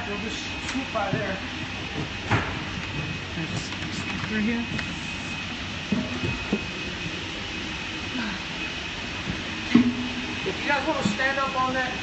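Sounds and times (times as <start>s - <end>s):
aircraft cabin machinery hum: 0.0s - 12.0s
thin high whine: 0.0s - 12.0s.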